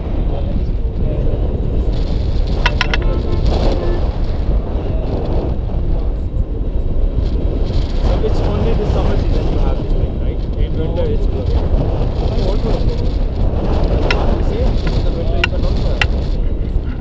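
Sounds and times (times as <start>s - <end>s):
faint muffled voices: 0.0s - 17.0s
wind buffeting microphone: 0.0s - 17.0s.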